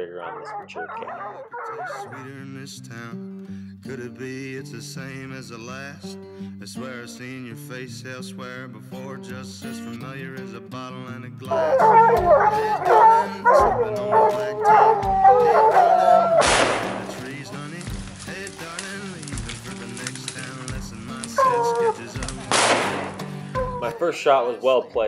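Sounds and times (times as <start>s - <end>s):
hounds baying and howling: 0.0s - 2.5s, 11.5s - 24.0s
country song: 0.0s - 25.0s
rifle shot: 16.4s - 17.1s, 22.5s - 23.2s.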